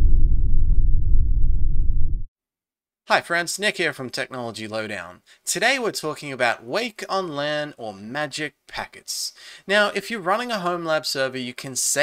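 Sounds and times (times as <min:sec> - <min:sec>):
deep loud rumble: 0:00.0 - 0:02.3.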